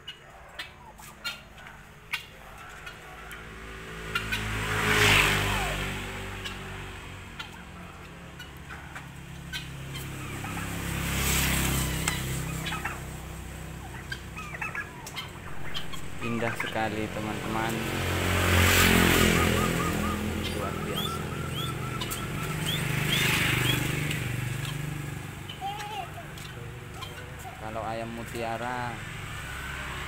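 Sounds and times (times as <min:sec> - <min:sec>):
turkey gobbling: 0:00.0 - 0:28.9.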